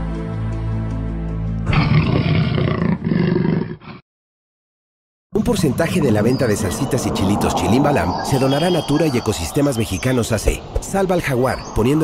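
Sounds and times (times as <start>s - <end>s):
soft music: 0.0s - 1.8s
jaguar roaring: 1.7s - 4.0s.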